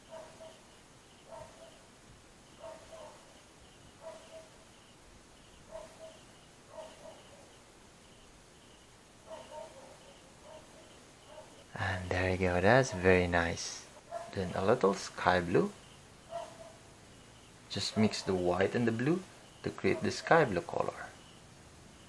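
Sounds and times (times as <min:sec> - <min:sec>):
faint pulsing chirp: 0:00.0 - 0:22.0.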